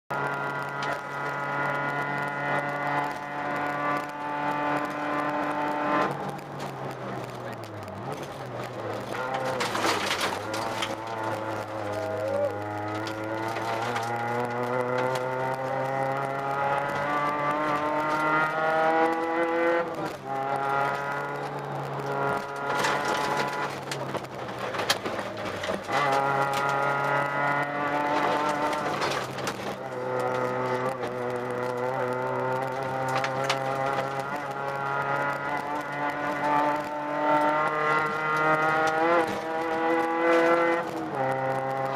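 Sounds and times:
clicks from road: 0:00.1 - 0:41.9
rally car engine from cabin: 0:00.1 - 0:41.9
tyre noise: 0:00.2 - 0:41.9.

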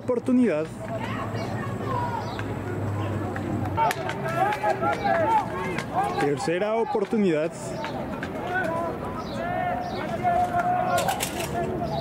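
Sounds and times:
distant shouting voices: 0:00.0 - 0:12.0
sharp claps: 0:03.3 - 0:06.3.

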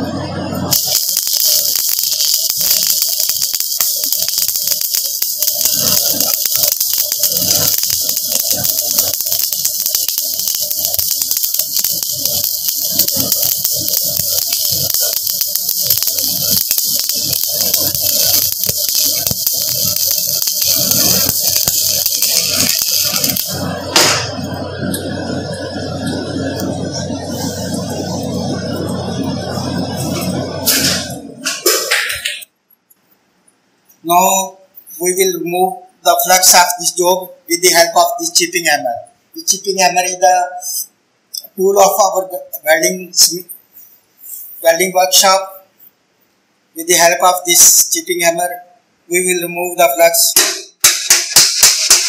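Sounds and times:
welding arc crackling: 0:00.0 - 0:32.5, 0:49.6 - 0:52.0.

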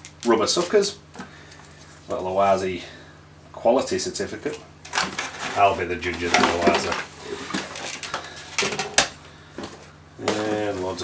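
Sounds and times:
cardboard packaging scraping: 0:04.9 - 0:08.4.

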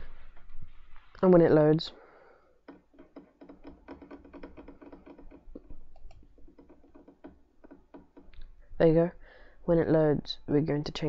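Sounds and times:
rapid small clicks: 0:02.6 - 0:08.5.

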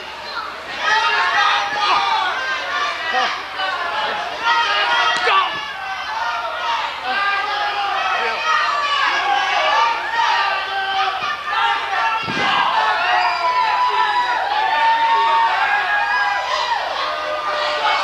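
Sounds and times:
crowd shouting and jeering: 0:00.0 - 0:18.0
thud: 0:12.2 - 0:12.7.

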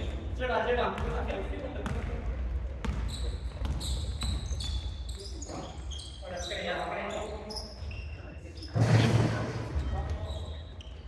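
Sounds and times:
sneakers squeaking: 0:00.0 - 0:11.0.

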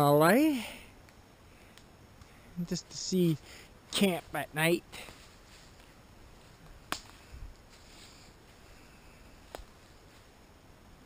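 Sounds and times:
faint hiss: 0:00.0 - 0:11.0.

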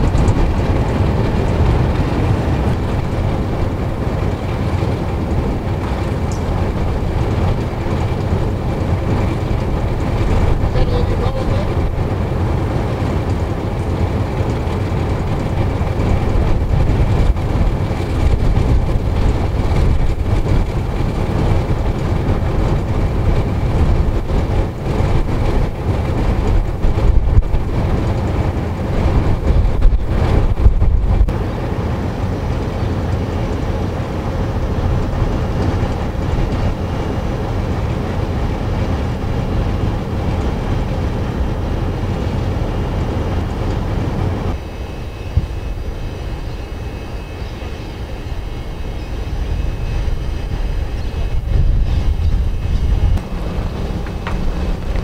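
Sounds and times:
diesel locomotive idling: 0:00.0 - 0:55.0.

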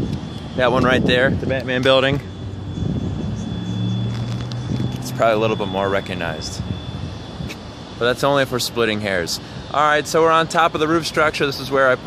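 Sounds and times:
wind on microphone: 0:00.0 - 0:09.7
low mechanical drone: 0:00.0 - 0:12.0.

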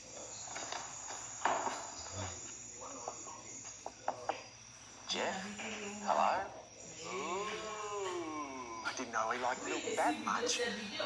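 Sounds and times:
faint high whine: 0:00.0 - 0:11.0
television soundtrack: 0:00.0 - 0:11.0.

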